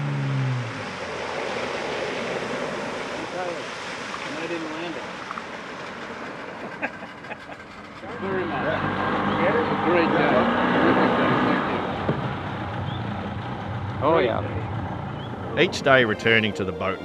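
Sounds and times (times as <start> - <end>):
people talking: 3.2 - 3.6, 4.3 - 5.0, 8.1 - 11.9, 14.0 - 14.7, 15.5 - 17.0.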